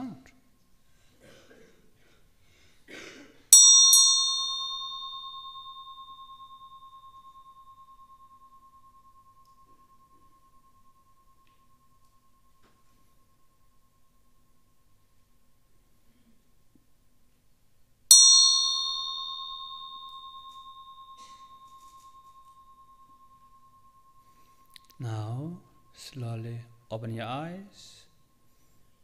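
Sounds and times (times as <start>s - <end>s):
meditation bell ringing: 3.5s - 15.8s, 18.1s - 29.0s.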